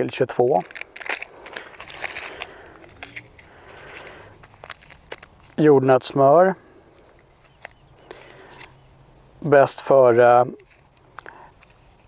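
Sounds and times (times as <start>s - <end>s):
food packets rustling and crinkling: 0.2s - 5.7s
small clicks and crackles: 0.6s - 5.6s, 10.6s - 12.0s.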